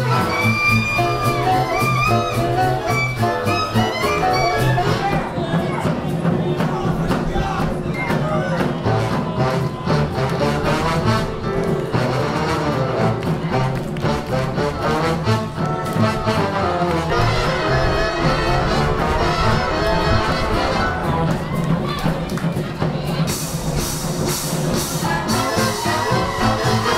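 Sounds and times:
swing big band playing: 0.0s - 26.9s.

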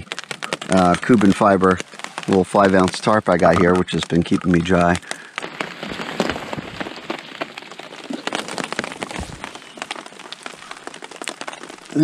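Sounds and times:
rain hissing on a tarp: 0.0s - 12.0s.

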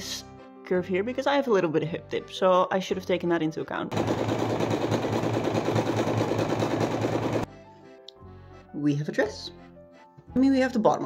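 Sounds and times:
sewing machine stitching: 3.9s - 7.5s.

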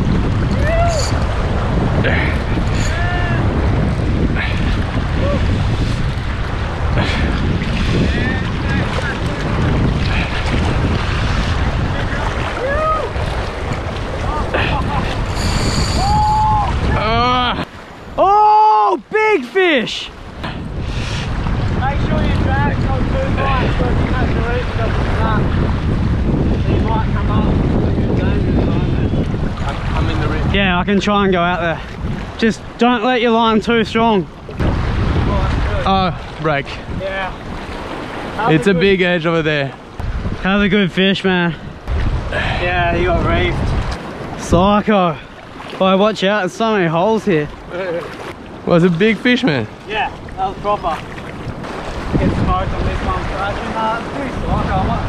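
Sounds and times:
surf and choppy sea: 0.0s - 55.0s
wind buffeting microphone: 0.0s - 55.0s.

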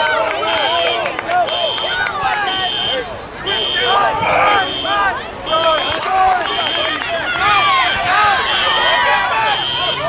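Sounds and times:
children shouting and cheering: 0.0s - 10.0s.

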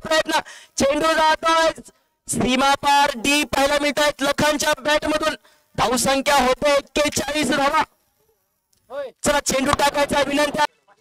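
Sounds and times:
man speaking rapidly: 0.0s - 8.0s, 8.9s - 10.7s.

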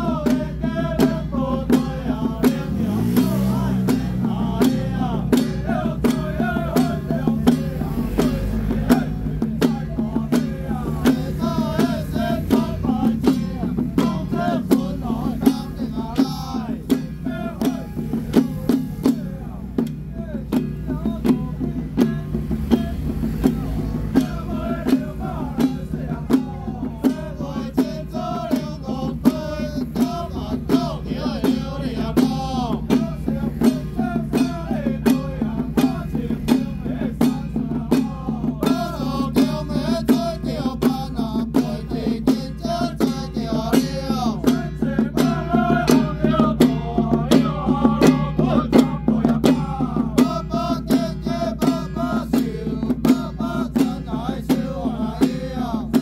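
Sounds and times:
hand drums beating: 0.0s - 56.0s
voices chanting: 0.0s - 56.0s.

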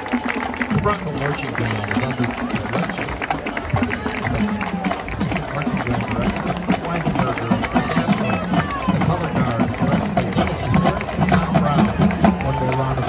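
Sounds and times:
percussion hits: 0.0s - 13.0s
spectators talking: 0.0s - 13.0s.

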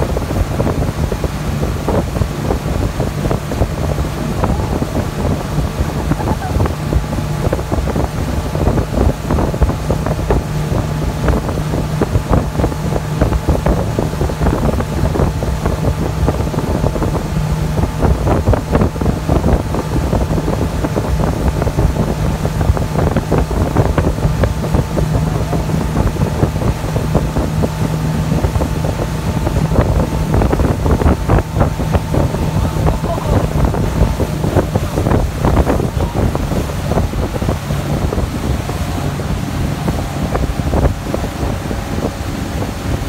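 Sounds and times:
motorboat engine drone: 0.0s - 43.0s
wake rushing: 0.0s - 43.0s
wind buffeting microphone: 0.0s - 43.0s.

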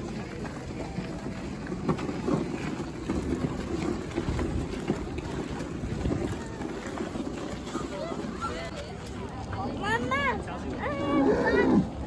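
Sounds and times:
wind buffeting microphone: 0.0s - 9.0s.

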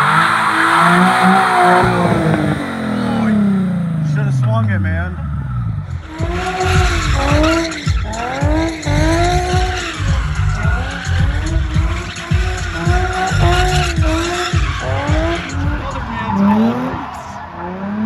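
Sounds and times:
car engine revving: 0.0s - 18.0s
tyres squealing: 6.1s - 17.7s.

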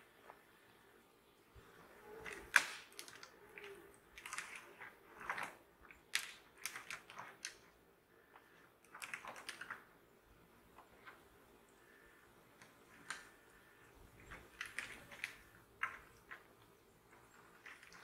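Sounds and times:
twigs crackling: 1.6s - 18.0s.

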